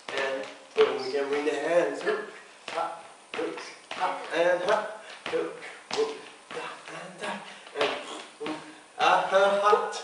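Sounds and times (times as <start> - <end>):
dance steps on wooden floor: 0.0 - 10.0
person speaking: 0.0 - 10.0.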